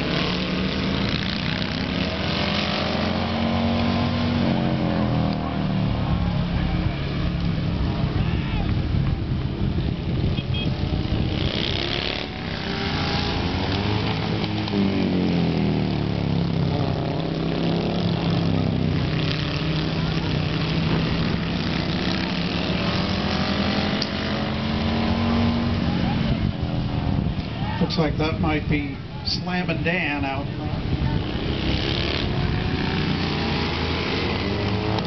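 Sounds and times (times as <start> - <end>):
motorcycle engines racing: 0.0 - 35.0.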